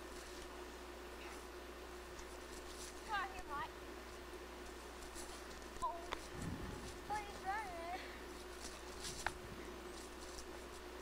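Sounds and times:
child's voice calling out: 0:05.8 - 0:06.2, 0:06.8 - 0:08.2.

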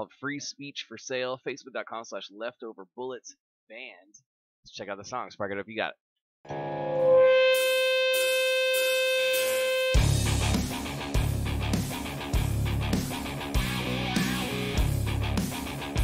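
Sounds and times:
held guitar note: 0:06.5 - 0:10.6
hard rock band playing: 0:08.8 - 0:16.0.

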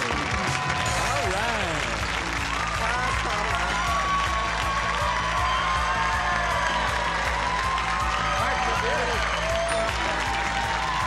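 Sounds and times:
game show win music: 0:00.0 - 0:11.0
studio audience applause: 0:00.0 - 0:11.0.

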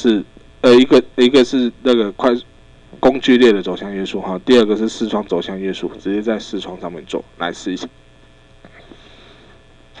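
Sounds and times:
faint background hiss: 0:00.0 - 0:10.0
low mains hum: 0:00.0 - 0:10.0.

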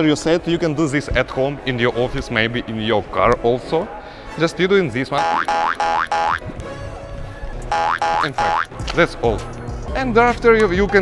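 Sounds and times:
background music: 0:00.0 - 0:11.0
cartoon boing: 0:05.2 - 0:06.4, 0:07.7 - 0:08.7.

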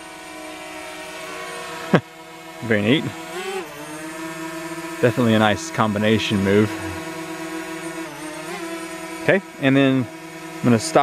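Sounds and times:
drone propellers humming: 0:00.0 - 0:11.0.

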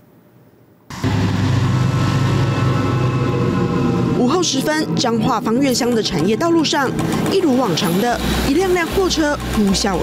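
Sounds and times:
heavy truck engine droning: 0:00.9 - 0:10.0.

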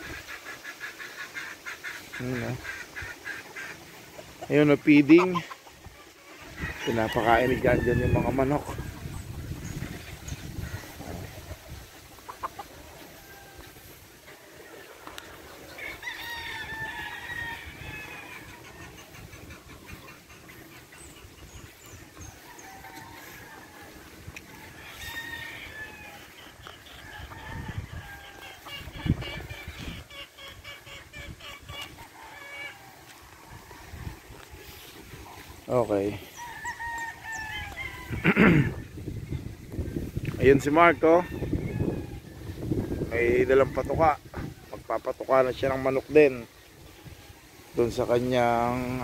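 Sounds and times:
chicken clucking: 0:00.0 - 0:49.0
roosters crowing: 0:00.0 - 0:49.0.

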